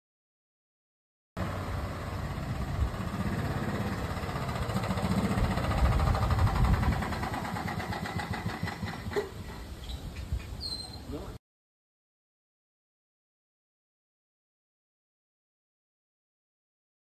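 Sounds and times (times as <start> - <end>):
golf cart engine running: 1.4 - 9.8.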